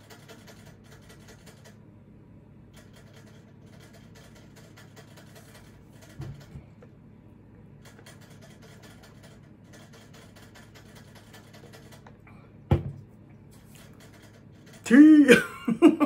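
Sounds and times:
plastic tumbler knock: 12.7s - 13.0s
person laughing: 14.9s - 16.0s.

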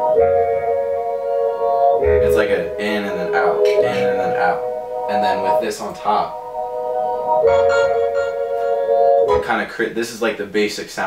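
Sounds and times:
held synth keyboard chords: 0.0s - 10.3s.

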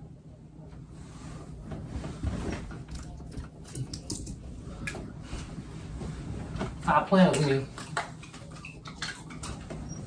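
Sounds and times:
bedding rustling: 0.6s - 3.7s, 4.4s - 8.6s.

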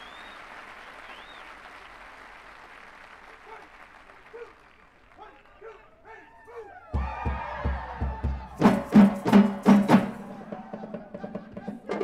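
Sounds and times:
crowd applause and cheering: 0.0s - 5.9s, 6.8s - 12.0s
low drum beats: 7.0s - 12.0s.

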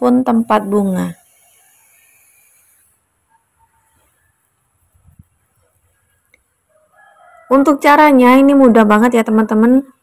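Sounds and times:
faint steady hiss: 0.0s - 6.8s.

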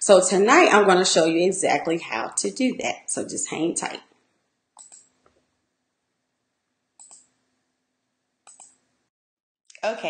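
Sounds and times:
computer mouse double click: 8.5s - 8.8s.

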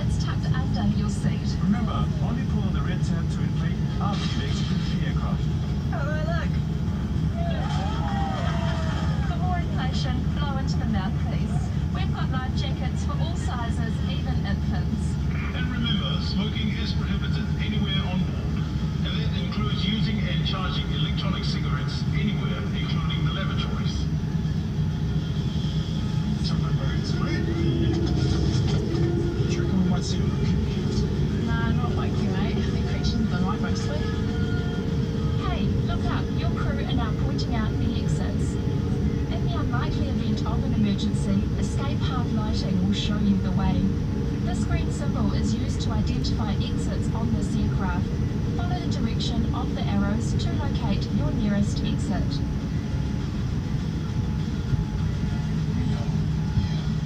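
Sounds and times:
low cabin rumble: 0.0s - 57.0s
steady hum: 0.0s - 57.0s.

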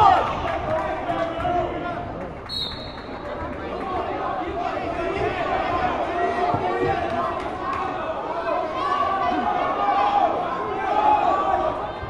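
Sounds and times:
crowd chatter: 0.0s - 12.0s
referee's whistle blast: 2.5s - 3.1s.

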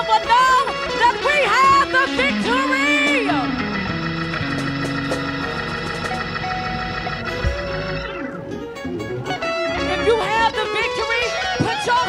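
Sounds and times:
organ playing held chords: 0.0s - 12.0s.

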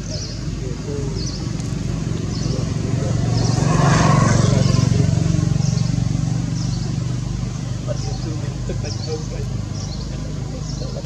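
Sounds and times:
vehicle engine passing: 0.0s - 11.0s.

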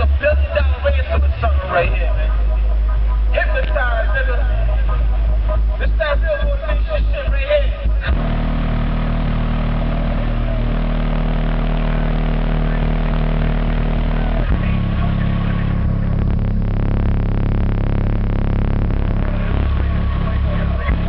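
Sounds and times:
subwoofer bass tones: 0.0s - 21.0s.

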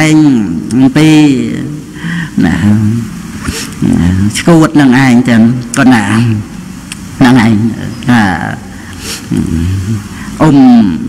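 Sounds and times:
man preaching into microphone: 0.0s - 6.6s, 7.2s - 11.0s.

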